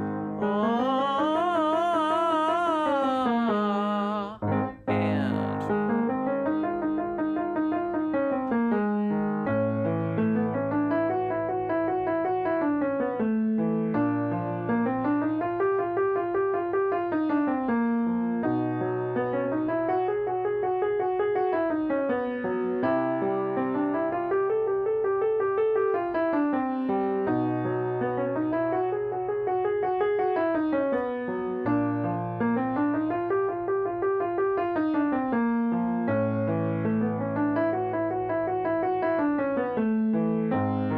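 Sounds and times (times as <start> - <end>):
piano warm-up pattern: 0.0 - 40.9
man singing with vibrato: 0.4 - 5.7.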